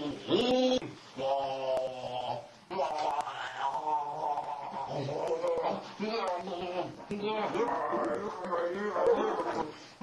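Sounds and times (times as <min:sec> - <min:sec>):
man speaking gibberish creature talk: 0:00.3 - 0:09.7.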